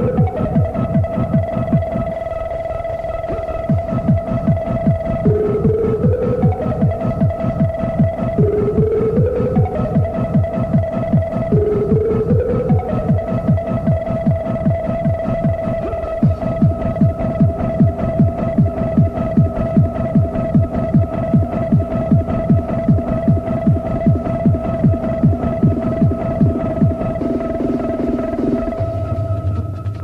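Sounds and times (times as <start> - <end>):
pounding kick drum: 0.0 - 2.1, 3.4 - 30.0
sustained synth notes: 0.0 - 30.0.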